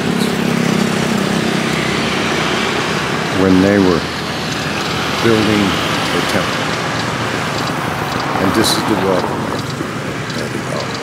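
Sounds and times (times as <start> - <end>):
motor scooter engine passing: 0.0 - 11.0
road noise: 0.0 - 11.0.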